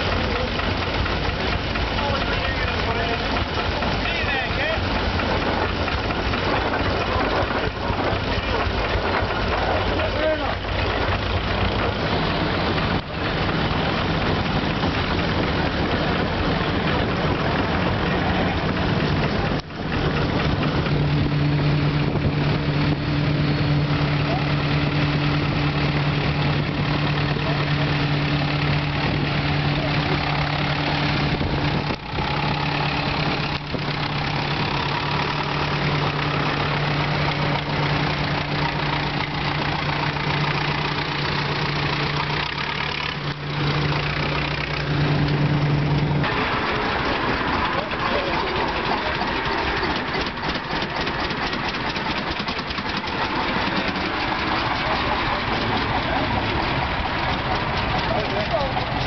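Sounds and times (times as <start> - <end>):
mix of voices: 0.0 - 14.0, 46.2 - 59.0
engines idling: 0.0 - 59.0
tractor diesel engine passing: 0.0 - 59.0.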